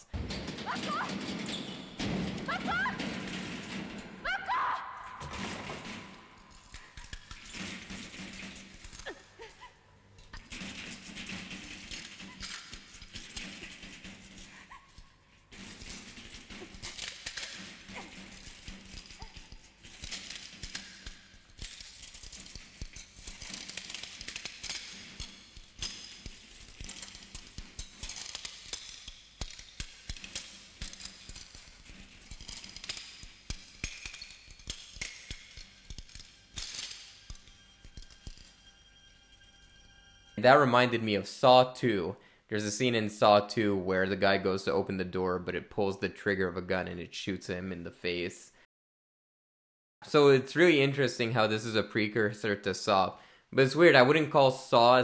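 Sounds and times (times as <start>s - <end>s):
crackling and rattling noises: 0.0s - 48.3s
horror film music: 36.6s - 40.5s.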